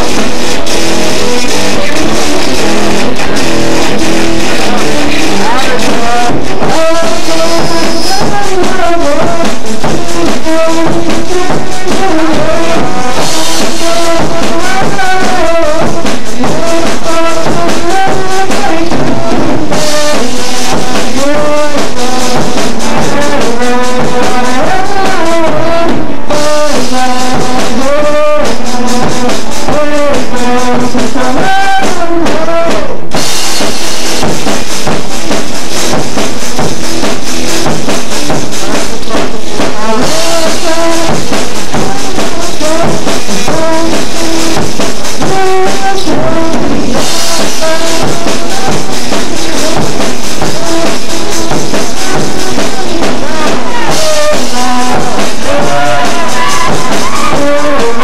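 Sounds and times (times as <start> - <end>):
man singing: 0.0 - 33.7, 35.8 - 58.0
drum kit: 0.0 - 58.0
electric guitar: 0.0 - 58.0.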